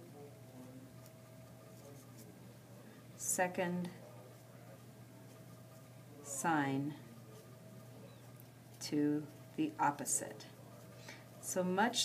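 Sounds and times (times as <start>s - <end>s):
low room hum: 0.0s - 12.0s
marker scratching on paper: 1.0s - 2.4s.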